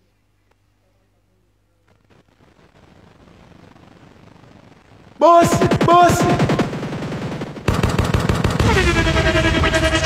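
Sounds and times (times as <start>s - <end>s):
shouted echoing voice: 5.2s - 6.7s
machine-gun sound effect: 5.3s - 10.0s
falling sweep effects: 8.6s - 10.0s.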